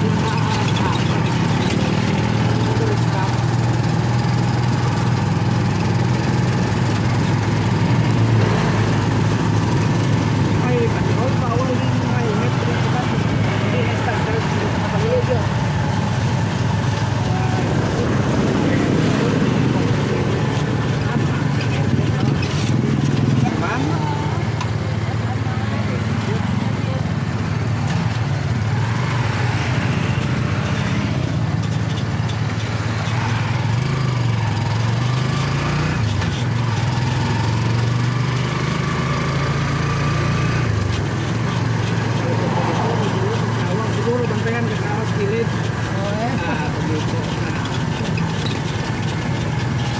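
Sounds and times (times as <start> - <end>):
motorcycle engine drone: 0.0 - 49.9.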